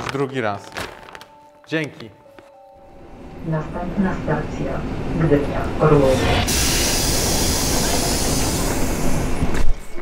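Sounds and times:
train rumble: 3.6 - 10.0
strong hiss: 6.5 - 9.5.

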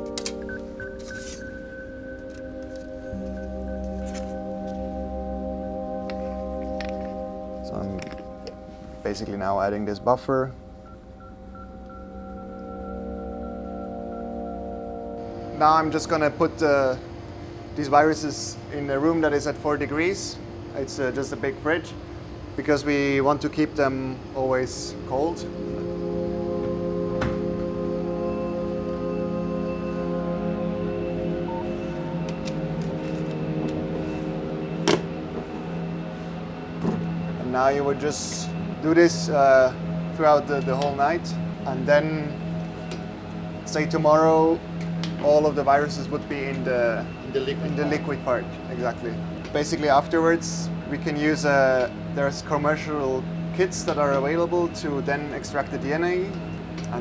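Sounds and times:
sustained chord music: 0.0 - 57.0.

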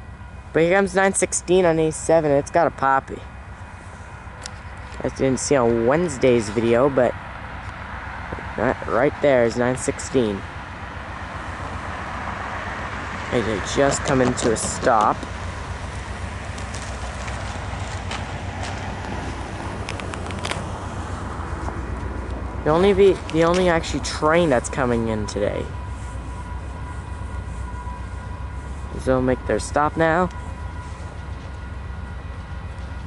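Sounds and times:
diesel locomotive idling: 0.0 - 33.0
faint steady tones: 0.0 - 33.0.

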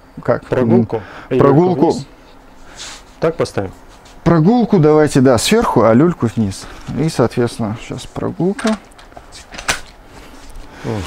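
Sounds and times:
plastic and metal handling noise: 8.5 - 10.7.

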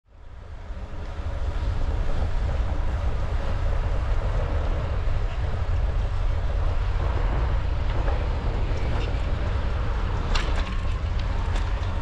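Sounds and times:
bicycle tyre road noise: 0.1 - 12.0
wind buffeting microphone: 0.1 - 12.0.

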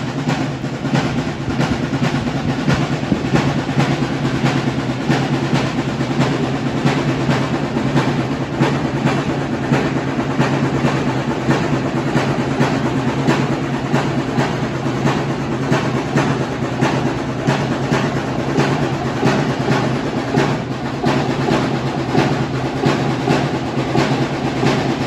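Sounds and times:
percussion beat: 0.0 - 25.0.

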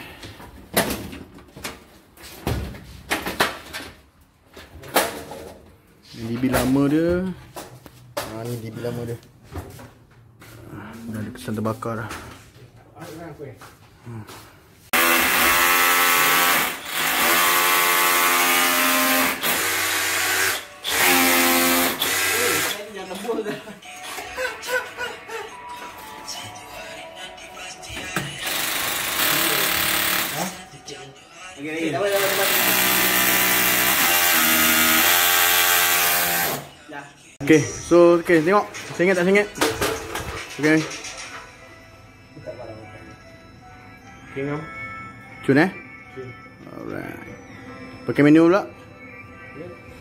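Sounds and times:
man speaking: 8.2 - 9.3, 10.8 - 12.3
hammer drill boring into wall: 15.0 - 22.8, 28.4 - 30.5, 32.2 - 36.7.

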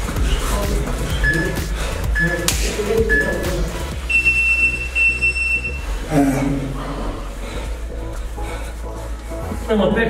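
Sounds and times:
electronic timer long high beep: 1.2 - 3.5, 4.1 - 5.8.

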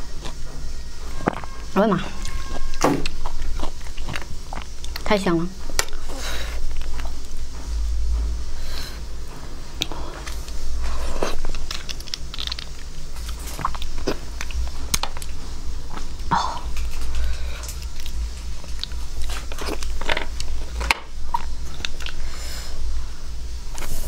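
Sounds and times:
steady low hum: 0.0 - 24.0
chewing and biting: 1.1 - 5.1, 9.8 - 22.2.

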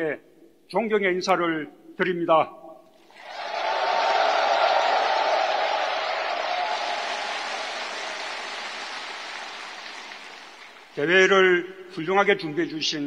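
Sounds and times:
audience applauding: 3.1 - 11.1.

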